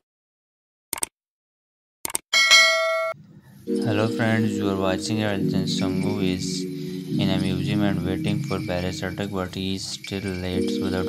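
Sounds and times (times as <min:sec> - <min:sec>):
notification bell ding: 0:02.4 - 0:06.3.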